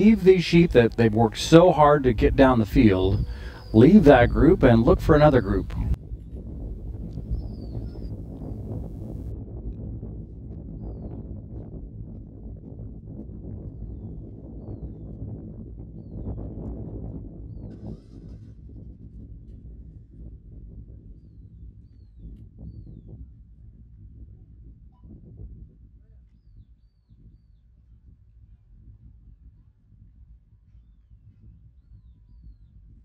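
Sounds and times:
steady low rumble: 0.0 - 14.6.

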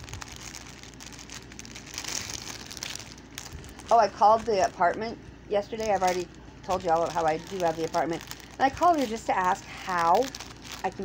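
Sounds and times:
plastic packaging crinkling: 0.0 - 5.0, 5.6 - 11.0.

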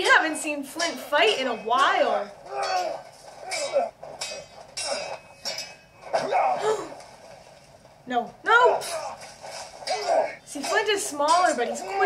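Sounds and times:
voices: 0.0 - 3.9, 9.9 - 12.0
swords clashing: 0.0 - 6.5, 8.8 - 12.0.

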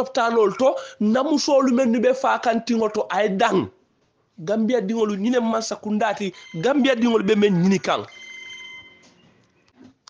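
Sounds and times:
high-pitched tone: 6.3 - 9.2.

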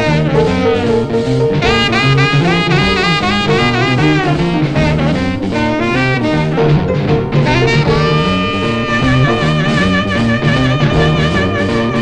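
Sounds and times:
bass: 0.0 - 12.0
boogie-woogie piano: 0.0 - 12.0
honking tenor saxophone solo: 0.0 - 12.0
swing drum beat: 0.0 - 12.0.

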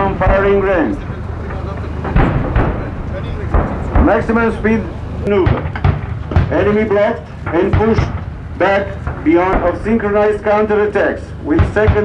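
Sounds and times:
distant explosion blast: 0.0 - 12.0
low rumble: 0.0 - 12.0.

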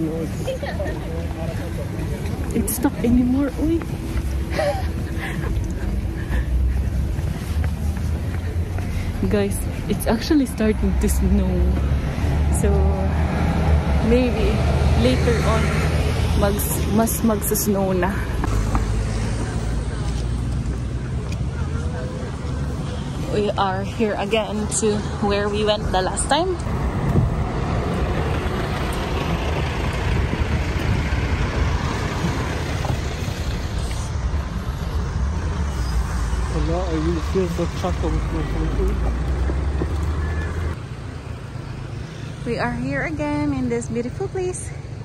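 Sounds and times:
outdoor background noise: 0.0 - 45.0
road traffic rumble: 0.0 - 45.0
low rumble: 24.4 - 40.8.

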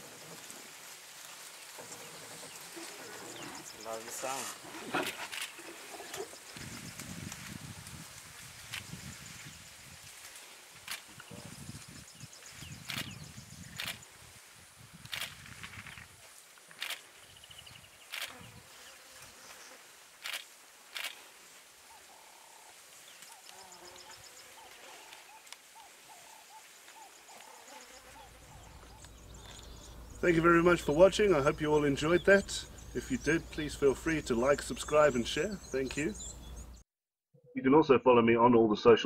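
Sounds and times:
birds calling: 0.0 - 7.4, 21.8 - 36.8.

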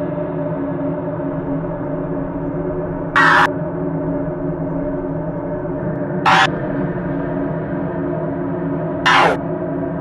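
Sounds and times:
gong-like low drone: 0.0 - 10.0
harsh noise burst: 1.4 - 3.5, 4.4 - 6.8, 9.1 - 9.4.

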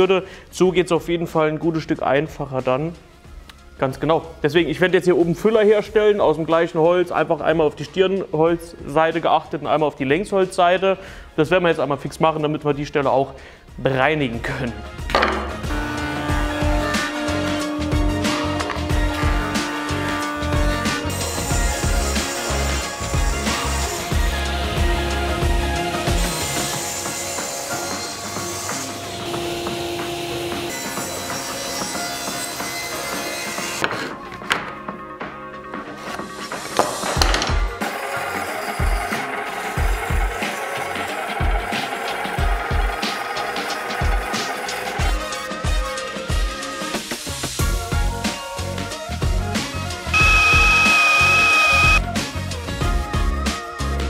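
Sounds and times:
background music with beat: 14.4 - 27.8, 43.9 - 54.0
table saw cutting wood: 26.2 - 33.8, 50.2 - 52.0
jointer planing wood: 26.6 - 32.0, 50.2 - 52.0.

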